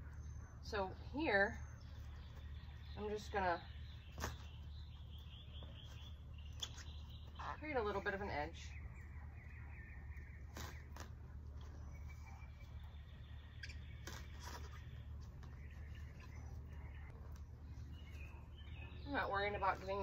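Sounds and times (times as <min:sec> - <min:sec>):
faint bird chirps: 0:00.0 - 0:20.0
steady low hum: 0:00.0 - 0:20.0.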